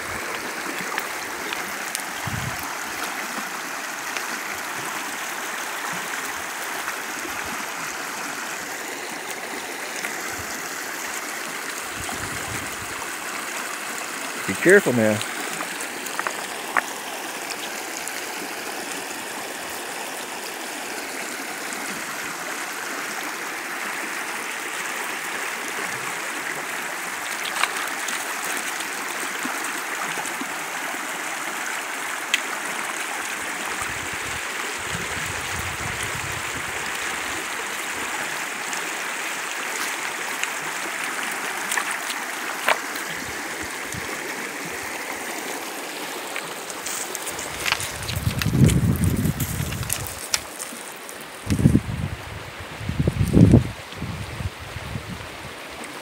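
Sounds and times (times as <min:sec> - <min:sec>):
water rushing over stones: 0:00.0 - 0:56.0.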